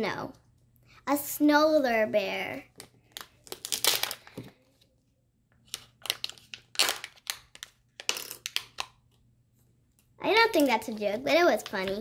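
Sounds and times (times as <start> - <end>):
foil wrapper tearing and crackling: 6.0 - 7.7.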